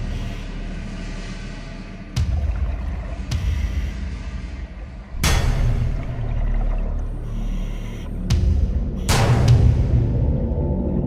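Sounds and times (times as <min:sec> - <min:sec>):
low rumble: 0:00.0 - 0:11.0
underwater bubbles gushing: 0:02.2 - 0:08.1.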